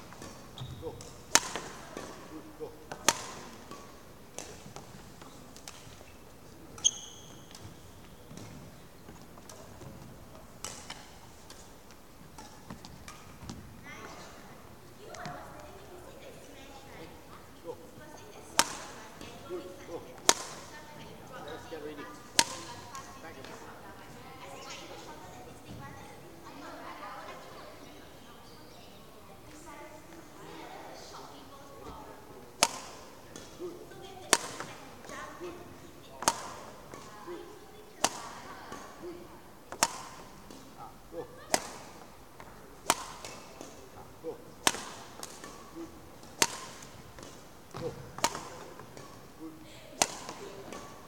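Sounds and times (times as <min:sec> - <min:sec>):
racket striking shuttlecock: 0:00.1 - 0:02.3, 0:02.9 - 0:06.0, 0:10.6 - 0:13.6, 0:18.4 - 0:19.5, 0:20.2 - 0:20.8, 0:22.2 - 0:23.6, 0:32.6 - 0:39.1, 0:39.7 - 0:40.8, 0:41.5 - 0:49.4, 0:50.0 - 0:51.0.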